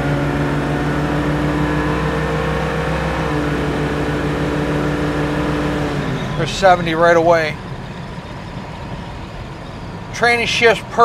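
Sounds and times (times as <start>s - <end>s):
car engine cruising: 0.0s - 11.0s
road noise: 0.0s - 11.0s.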